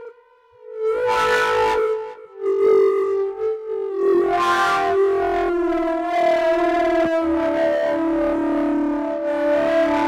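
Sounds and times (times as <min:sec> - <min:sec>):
electronic wind instrument tone: 0:00.0 - 0:10.0.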